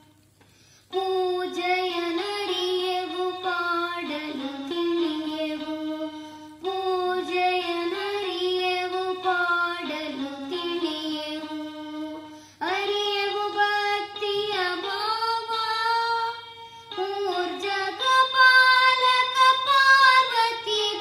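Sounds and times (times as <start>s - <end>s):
child singing: 0.9s - 21.0s
toy keyboard melody: 0.9s - 21.0s.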